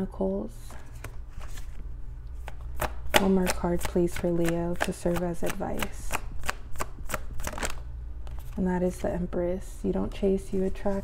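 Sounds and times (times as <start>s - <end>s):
low steady hum: 0.0s - 11.0s
cards handled by hand: 0.7s - 9.1s.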